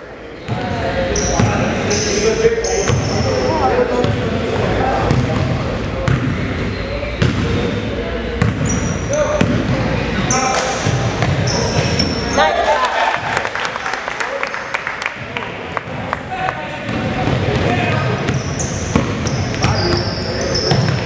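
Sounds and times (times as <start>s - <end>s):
sneakers squeaking: 0.2s - 12.6s, 16.8s - 21.0s
basketball bouncing on hardwood floor: 18.3s - 19.8s.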